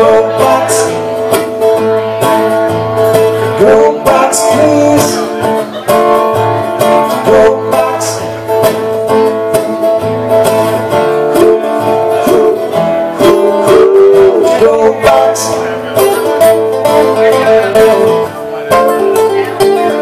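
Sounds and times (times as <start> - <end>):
acoustic guitar strumming: 0.0 - 20.0.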